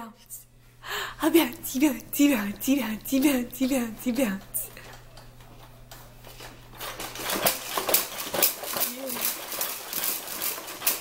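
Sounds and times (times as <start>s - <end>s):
plastic toys clicking and rattling: 6.3s - 11.0s.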